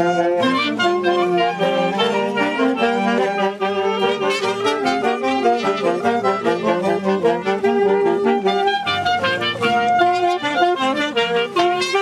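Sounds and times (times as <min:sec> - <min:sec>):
street brass band playing: 0:00.0 - 0:12.0.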